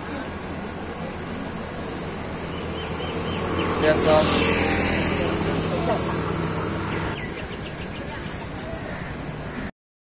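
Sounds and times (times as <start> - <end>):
vehicle passing close by: 0.0 - 9.5
traffic hum: 0.0 - 9.7.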